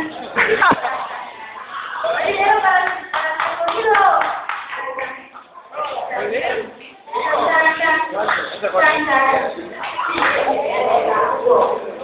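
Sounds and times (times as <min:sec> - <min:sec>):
audience clapping: 0:02.7 - 0:05.2.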